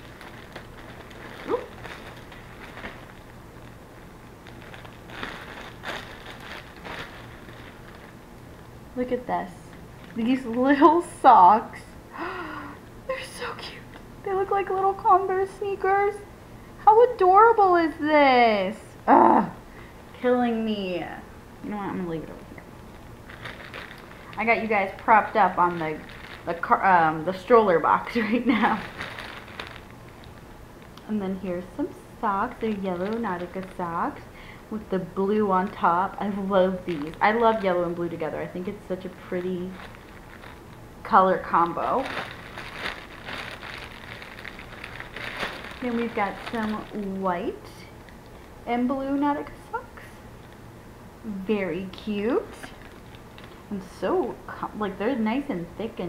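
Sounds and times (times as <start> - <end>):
soft handling rustling: 0.0 - 8.8, 22.8 - 34.2, 35.5 - 48.6, 52.0 - 53.8
plastic packaging crinkling: 0.0 - 10.8, 22.8 - 48.6, 51.8 - 53.9.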